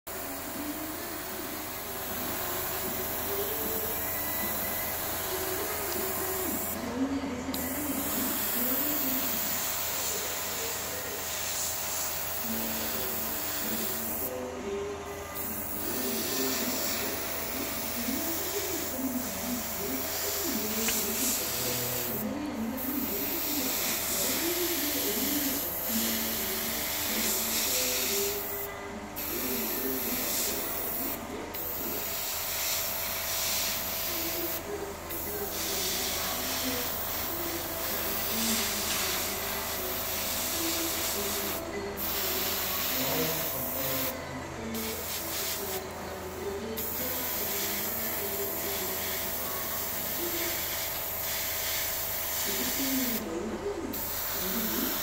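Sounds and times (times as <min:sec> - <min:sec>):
airbrush hissing: 0:00.1 - 0:14.4, 0:15.1 - 0:55.0.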